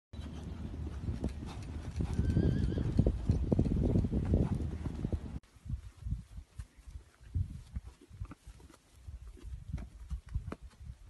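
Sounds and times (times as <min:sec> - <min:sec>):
hoofbeats on sand: 0:00.2 - 0:11.0
horse whinny: 0:02.1 - 0:03.0.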